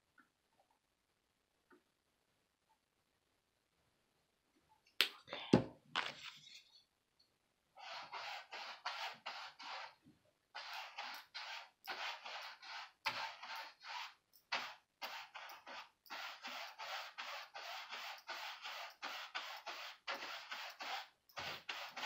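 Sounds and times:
paintbrush scraping on canvas: 0:07.8 - 0:10.0, 0:10.6 - 0:22.0.

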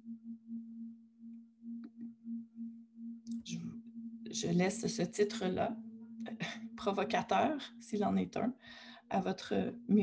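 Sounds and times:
low wavering hum: 0:00.0 - 0:10.0.

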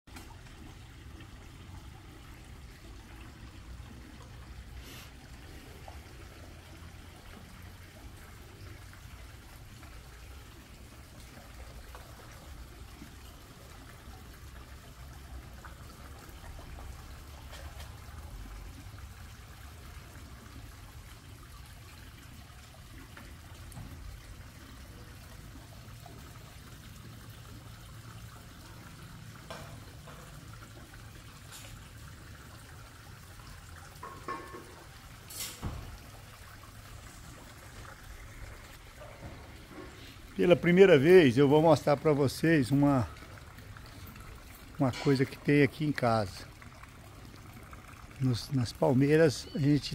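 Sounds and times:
water trickling into a pond: 0:00.1 - 0:49.9.

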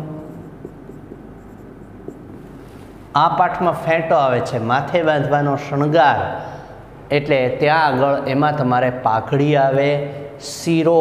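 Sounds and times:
marker pen scratching on whiteboard: 0:00.2 - 0:03.0.

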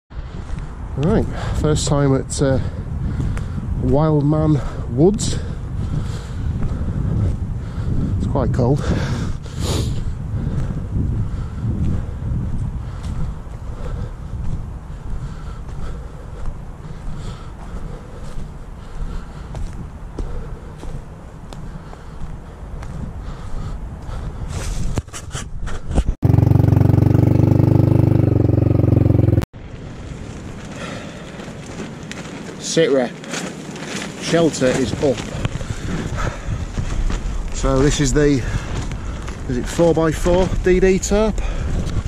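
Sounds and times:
wind rumbling on microphone: 0:00.1 - 0:32.6, 0:33.2 - 0:42.0
footsteps crunching dry leaves: 0:29.6 - 0:40.8.

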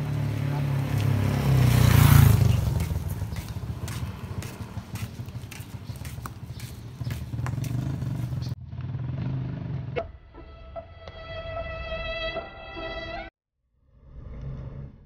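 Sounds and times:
vehicle engine passing by: 0:00.0 - 0:10.0.

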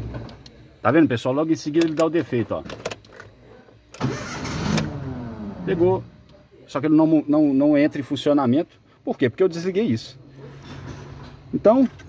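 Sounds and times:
car engine cranking: 0:03.9 - 0:05.8.

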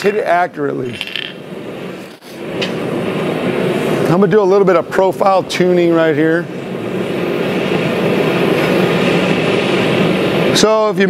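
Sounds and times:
gas forge burner roaring: 0:00.0 - 0:11.0.

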